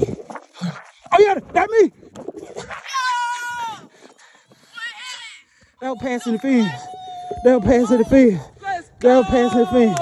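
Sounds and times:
person shouting: 0:02.8 - 0:03.9, 0:04.7 - 0:10.0.

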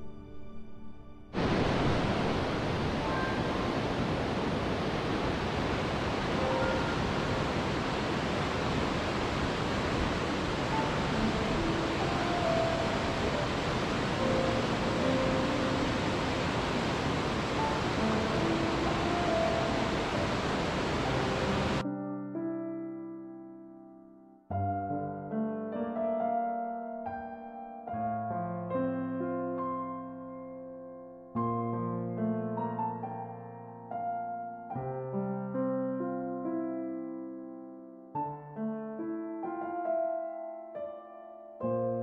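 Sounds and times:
waterfall rushing: 0:01.4 - 0:21.8.

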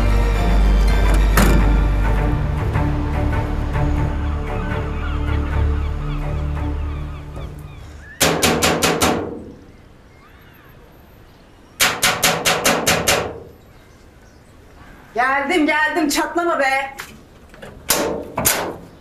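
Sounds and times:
background music: 0:00.0 - 0:09.2.

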